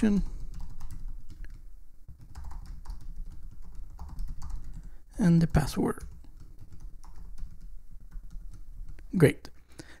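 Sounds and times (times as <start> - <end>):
keyboard keys clicking: 0.4 - 4.9, 6.0 - 9.1.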